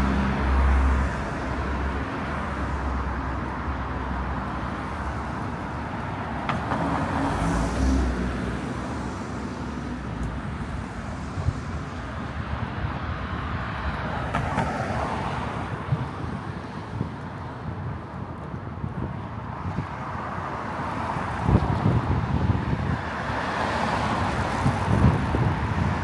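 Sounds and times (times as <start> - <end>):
cars driving past: 0.0 - 26.0
steady traffic noise: 0.0 - 26.0.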